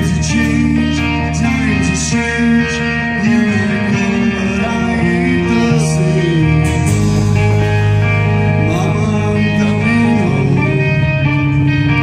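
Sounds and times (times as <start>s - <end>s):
live rock band playing: 0.0s - 12.0s
man singing: 0.0s - 12.0s.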